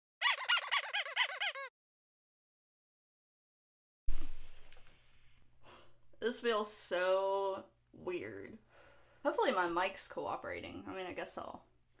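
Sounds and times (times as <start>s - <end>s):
high cartoon squeaks: 0.2s - 1.7s.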